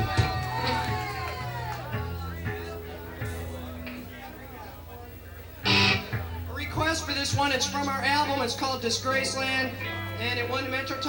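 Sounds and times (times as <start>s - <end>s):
electric guitar strum: 5.6s - 11.0s.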